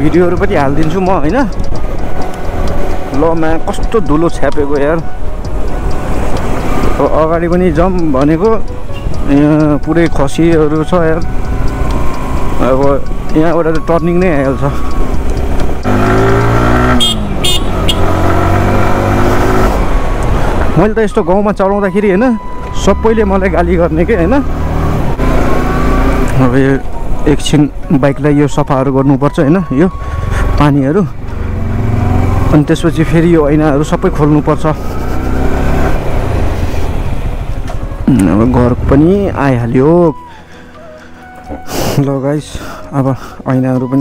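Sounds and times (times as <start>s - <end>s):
man talking: 0.0s - 1.5s, 3.1s - 5.1s, 7.0s - 11.3s, 12.6s - 14.8s, 20.8s - 24.5s, 26.3s - 31.2s, 32.5s - 34.8s, 38.0s - 40.3s, 41.8s - 44.0s.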